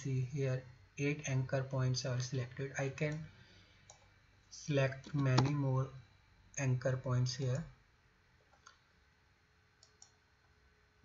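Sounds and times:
computer mouse clicks: 0:03.9 - 0:04.1, 0:08.5 - 0:08.8, 0:09.8 - 0:10.2.

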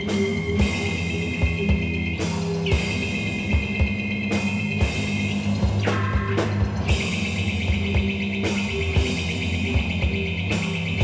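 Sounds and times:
drum kit beats: 0:00.0 - 0:11.0.

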